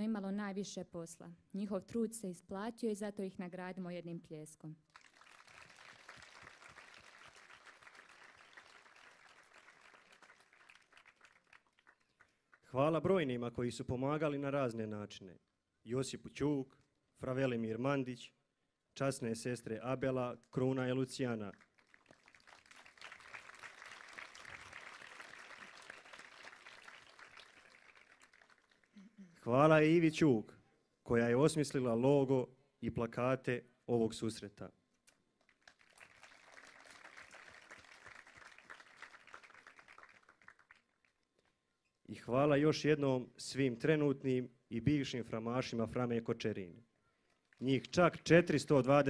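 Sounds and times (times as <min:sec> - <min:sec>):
distant audience applause: 0:04.9 - 0:12.4, 0:21.5 - 0:29.0, 0:35.5 - 0:41.0.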